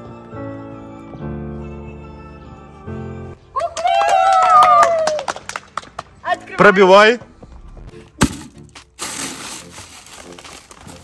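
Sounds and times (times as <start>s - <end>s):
paper and snack packet crinkling: 8.8s - 11.0s.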